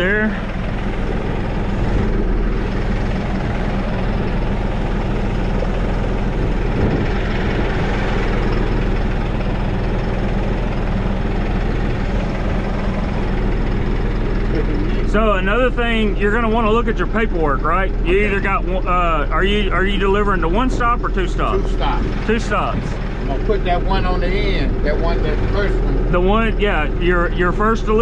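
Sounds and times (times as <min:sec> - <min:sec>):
tractor diesel engine running: 0:00.0 - 0:28.0.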